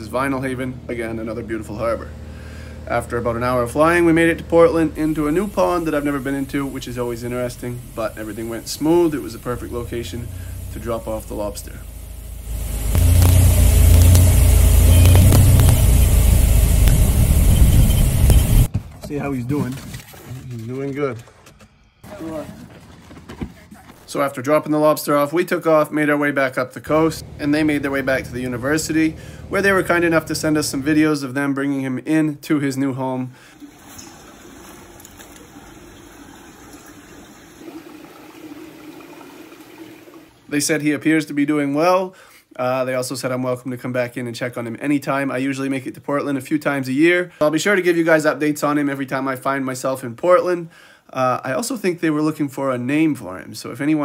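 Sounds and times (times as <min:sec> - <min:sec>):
piston engine and propeller: 0:00.0 - 0:18.7, 0:26.9 - 0:31.1
running and bubbling water: 0:05.0 - 0:18.3, 0:33.4 - 0:40.5.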